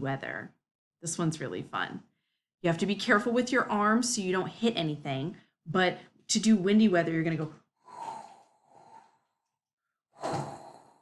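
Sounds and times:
woman blowing breathy whoosh: 0:07.8 - 0:09.4, 0:10.1 - 0:11.0.

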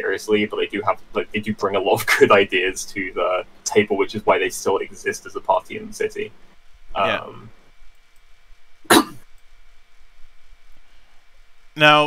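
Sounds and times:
faint steady hum: 0:00.0 - 0:12.0
person saying yeah: 0:07.0 - 0:07.5.

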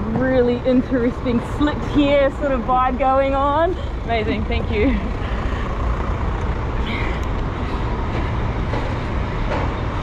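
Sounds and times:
passing vehicles rumbling: 0:00.0 - 0:10.0.

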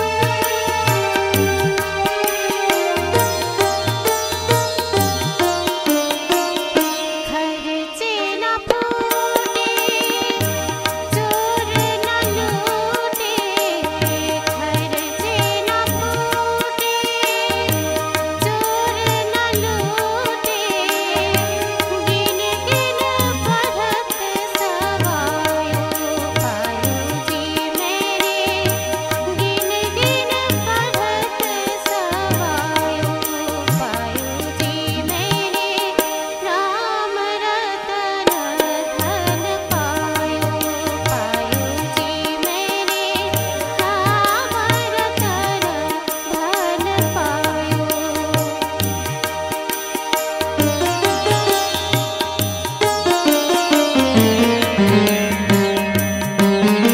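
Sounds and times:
percussion striking: 0:00.0 - 0:07.5, 0:08.7 - 0:36.5, 0:38.2 - 0:56.9
woman singing: 0:00.0 - 0:56.9
held drone note: 0:52.8 - 0:56.9.

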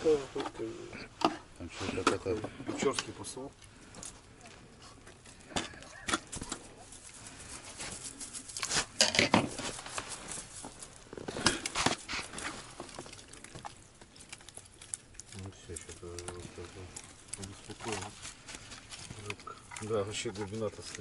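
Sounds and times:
fish flapping on ice: 0:05.4 - 0:21.0.

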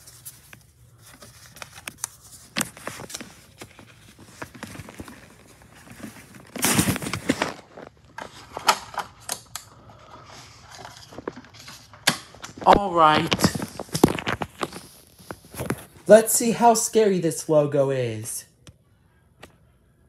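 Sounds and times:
disc case rustling: 0:00.0 - 0:16.3.

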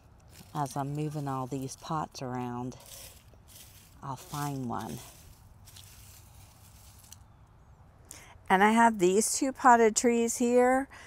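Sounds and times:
footsteps and rustling on ground: 0:00.0 - 0:07.3.

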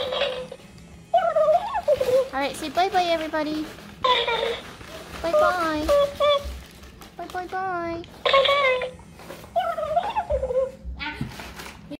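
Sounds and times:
puppy whimpering: 0:00.0 - 0:02.3, 0:08.3 - 0:11.3.

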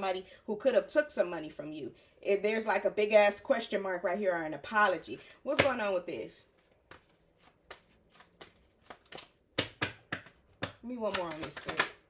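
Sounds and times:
cards clicking and snapping: 0:06.8 - 0:10.5, 0:11.1 - 0:12.0.

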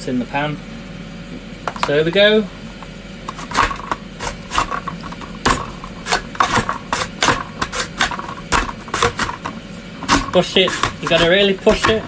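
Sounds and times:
vegetable chopper scraping strokes: 0:03.3 - 0:12.0.

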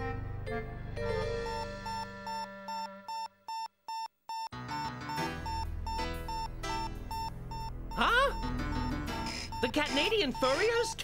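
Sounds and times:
cartoon background music: 0:00.0 - 0:03.1, 0:04.6 - 0:11.0
electronic alarm beeping: 0:01.4 - 0:11.0.

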